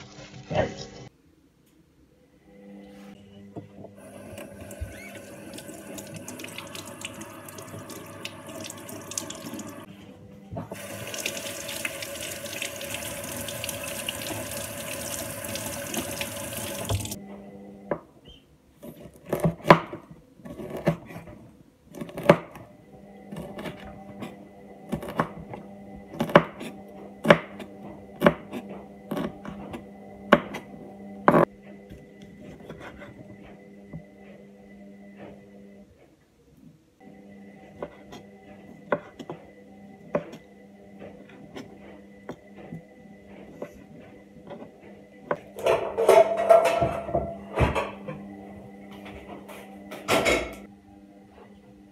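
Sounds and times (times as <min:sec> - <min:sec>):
washing machine hum: 0:00.0 - 0:01.2, 0:02.5 - 0:51.9
tap running into a sink: 0:10.7 - 0:17.2.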